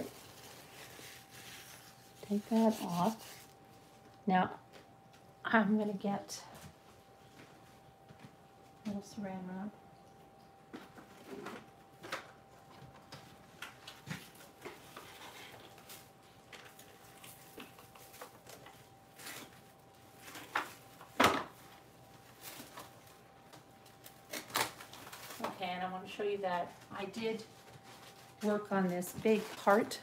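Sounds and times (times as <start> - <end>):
faint high-pitched hum: 0.0 - 30.0.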